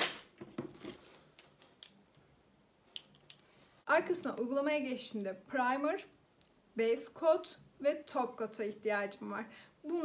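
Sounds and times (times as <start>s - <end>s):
small objects clicking and tapping: 1.4s - 3.5s
woman speaking: 3.9s - 6.1s, 6.8s - 10.0s.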